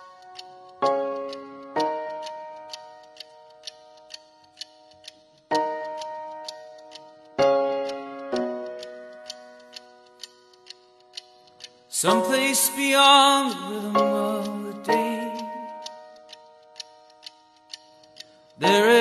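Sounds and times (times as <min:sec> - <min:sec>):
clock-like ticking: 0:00.0 - 0:19.0.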